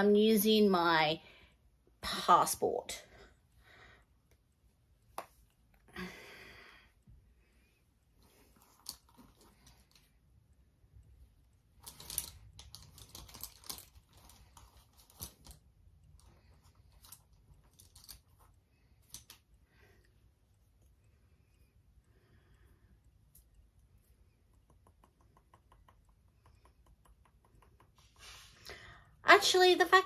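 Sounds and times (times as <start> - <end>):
makeup products clicking and rustling: 11.8 - 19.5.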